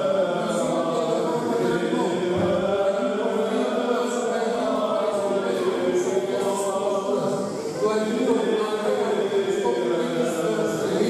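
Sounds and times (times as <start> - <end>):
chanters singing held notes: 0.0 - 11.0.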